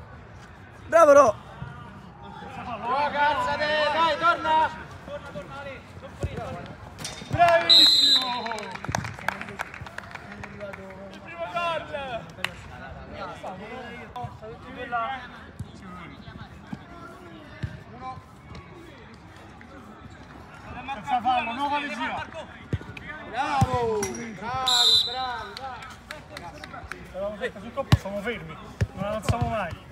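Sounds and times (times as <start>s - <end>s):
ball kicks and bounces: 6.2s - 7.5s, 23.6s - 24.3s, 28.8s - 29.9s
referee whistle blast: 7.7s - 8.6s, 24.6s - 25.6s.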